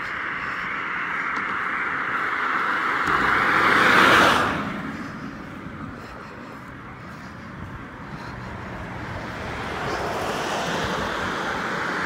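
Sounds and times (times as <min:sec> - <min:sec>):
car driving past: 0:00.4 - 0:05.6.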